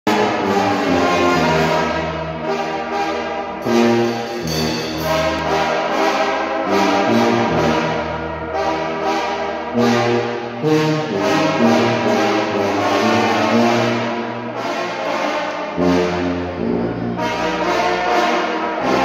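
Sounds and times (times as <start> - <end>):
brass band playing: 0.1 - 19.0.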